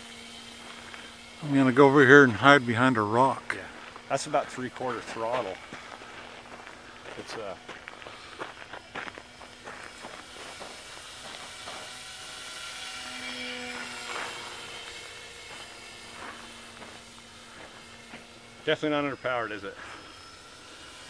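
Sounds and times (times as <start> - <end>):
model plane motor whining: 0.0 - 21.0.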